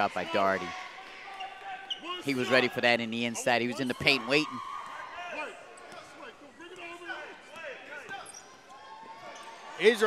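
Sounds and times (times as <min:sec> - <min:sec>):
sneakers squeaking on floor: 0:01.3 - 0:02.6, 0:05.8 - 0:09.6.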